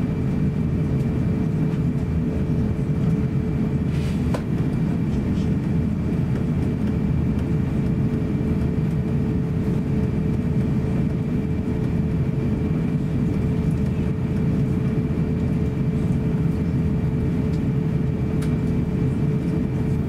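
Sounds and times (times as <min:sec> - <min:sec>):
aircraft cabin rumble and hum: 0:00.0 - 0:20.0.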